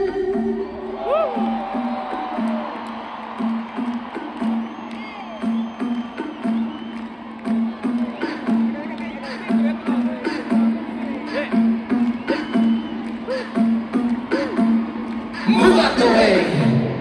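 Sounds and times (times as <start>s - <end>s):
crowd cheering and shouting: 0.0s - 17.0s
live concert music: 0.0s - 17.0s.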